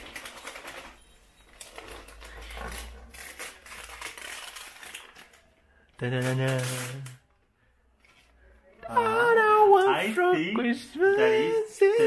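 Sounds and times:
wrapping paper crinkling: 0.0 - 7.2.

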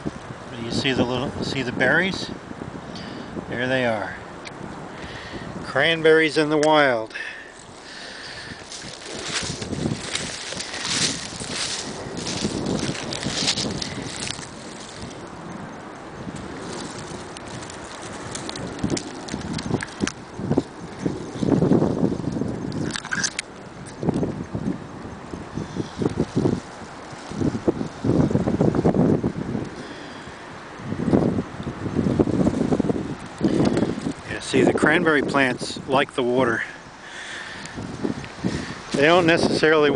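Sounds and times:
shrubs and dry leaves crackling: 0.0 - 39.9
wind gusting on microphone: 0.0 - 39.9.

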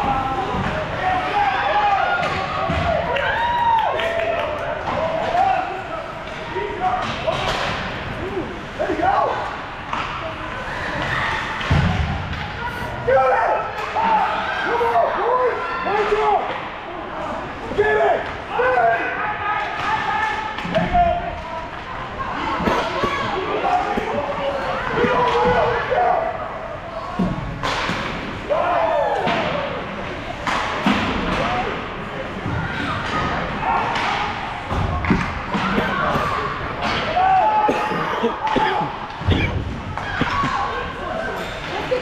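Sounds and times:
puck and players hitting boards: 2.1 - 3.4, 6.2 - 8.1, 9.3 - 12.6, 19.6 - 21.8, 22.7 - 25.9, 27.1 - 31.8, 32.4 - 37.4.

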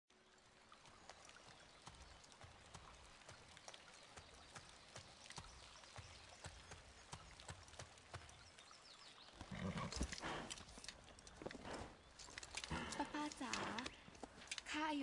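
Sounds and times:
horse hooves clip-clopping: 0.8 - 14.8.

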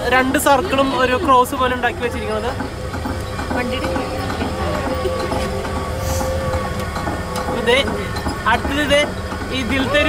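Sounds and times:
train engine rumbling: 0.0 - 10.0.

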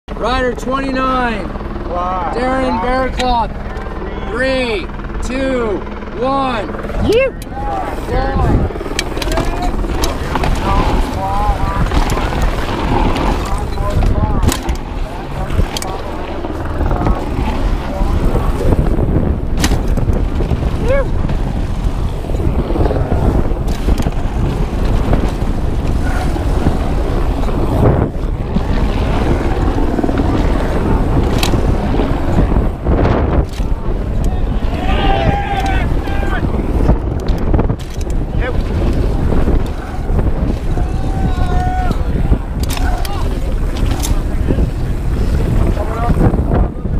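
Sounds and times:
wind buffeting microphone: 0.1 - 46.9
bike knocks and rattles: 8.8 - 22.5, 23.3 - 34.3, 42.6 - 44.3
tyre noise on dirt and rock: 9.0 - 15.9
spectators shouting: 34.3 - 36.5, 39.8 - 43.4.

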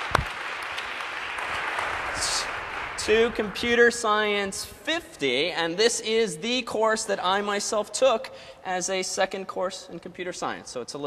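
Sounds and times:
audience applauding: 0.0 - 4.3.

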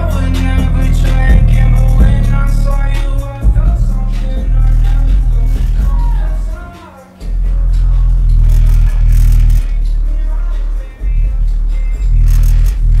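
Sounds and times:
heavy sustained bass notes: 0.0 - 13.0
song over speakers: 0.0 - 13.0.

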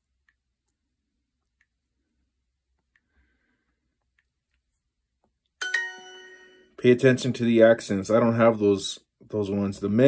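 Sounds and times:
bell-like correct-answer chime: 5.6 - 6.8
man speaking: 6.8 - 10.0.

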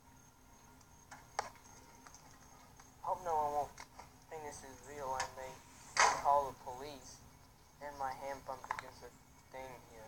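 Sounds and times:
voices from phone speaker: 3.0 - 7.2, 7.8 - 10.0.

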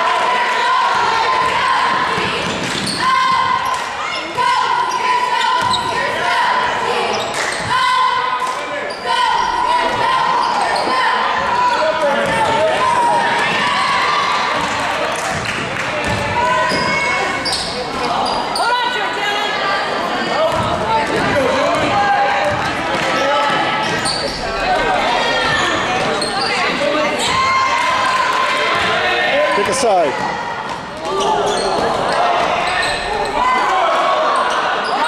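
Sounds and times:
basketball bouncing on hardwood: 16.0 - 16.9.

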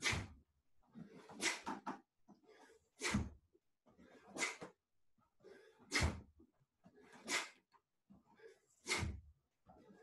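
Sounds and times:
forceful breath: 2.4 - 3.4, 4.0 - 4.8, 5.4 - 6.3, 6.9 - 7.6, 8.2 - 10.0.

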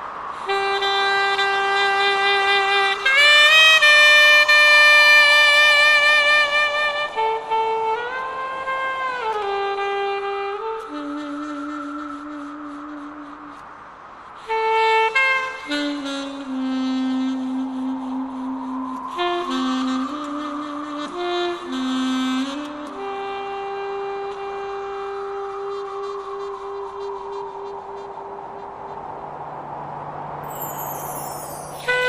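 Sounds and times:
wind instrument funeral melody: 0.2 - 13.7, 14.4 - 29.0, 30.4 - 32.0.

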